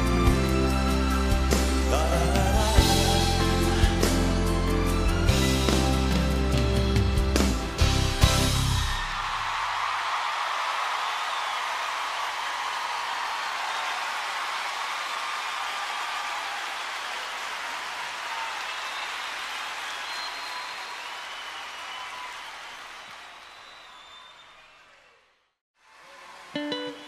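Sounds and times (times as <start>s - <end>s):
audience applauding: 5.7s - 27.0s.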